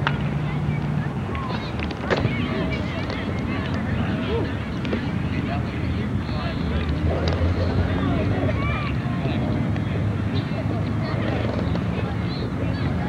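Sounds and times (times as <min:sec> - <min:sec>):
faint distant voices: 0:00.0 - 0:13.0.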